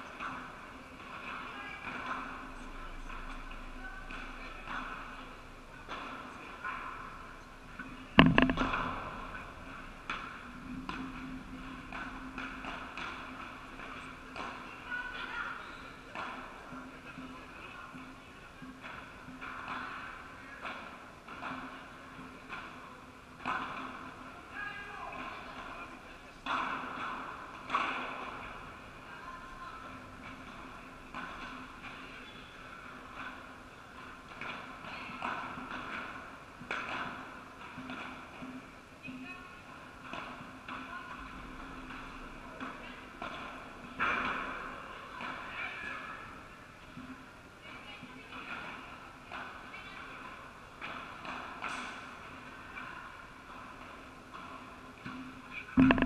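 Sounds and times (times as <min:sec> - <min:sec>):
ball knocks on paddles and walls: 0:08.2 - 0:09.4.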